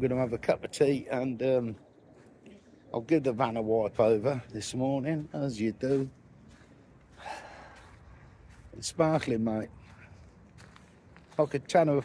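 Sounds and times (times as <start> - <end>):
man gasping: 7.1 - 8.0.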